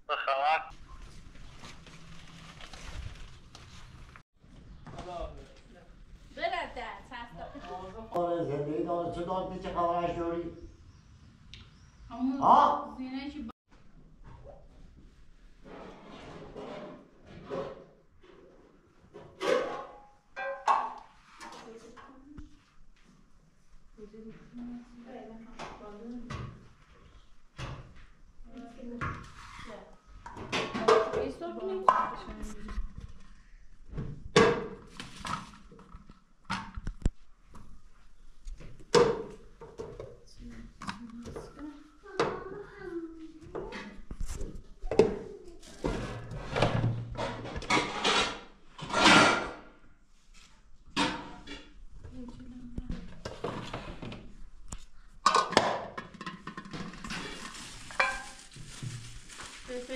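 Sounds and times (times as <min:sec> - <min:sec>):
people talking: 0:00.1 - 0:00.7.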